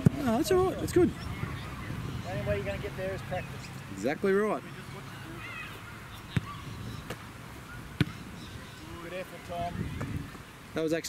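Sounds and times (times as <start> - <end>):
football being kicked thuds: 0.0 - 0.2, 6.3 - 7.2, 8.0 - 8.2.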